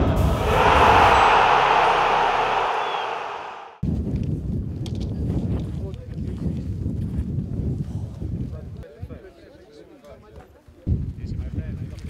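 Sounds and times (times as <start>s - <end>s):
low rumble: 0.0s - 3.8s.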